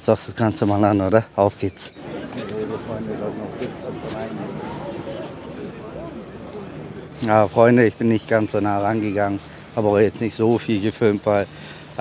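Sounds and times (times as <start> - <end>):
crowd babble: 0.0 - 12.0.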